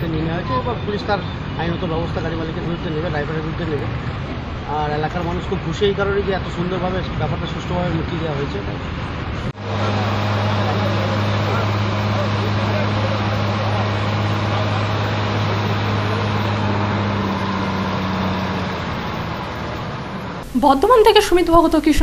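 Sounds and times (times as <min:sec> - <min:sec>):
street noise: 0:00.0 - 0:22.0
steady low hum: 0:09.5 - 0:20.6.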